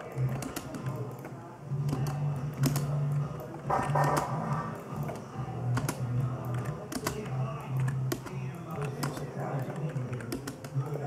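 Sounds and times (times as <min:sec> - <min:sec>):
keyboard key clicks: 0:03.7 - 0:04.4, 0:05.0 - 0:10.8.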